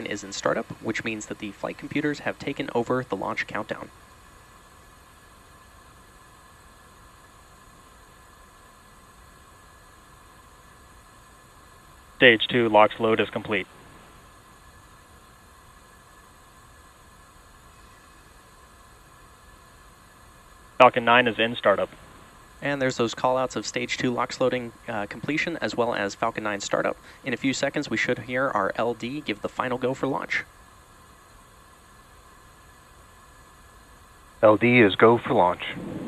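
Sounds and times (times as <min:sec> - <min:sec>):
faint steady hiss: 0:00.0 - 0:36.0.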